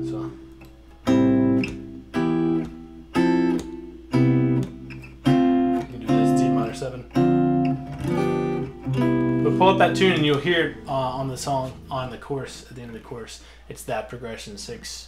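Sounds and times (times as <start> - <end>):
clean electric guitar chords: 0.0 - 12.1.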